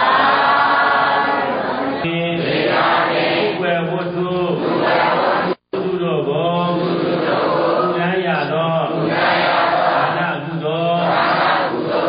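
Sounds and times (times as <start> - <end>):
man chanting: 2.0 - 2.7, 3.4 - 4.8, 5.6 - 9.2, 10.0 - 11.4.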